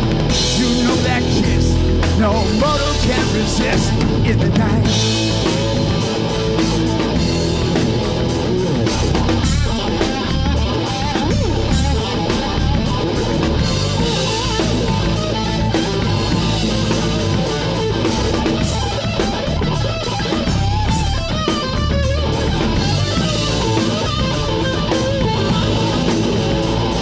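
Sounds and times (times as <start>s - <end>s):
drum kit: 0.0s - 27.0s
electric bass: 0.0s - 27.0s
electric guitar: 0.0s - 27.0s.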